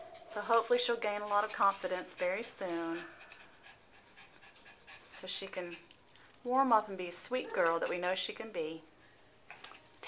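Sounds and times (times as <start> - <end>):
dog panting faintly: 0.3 - 8.8.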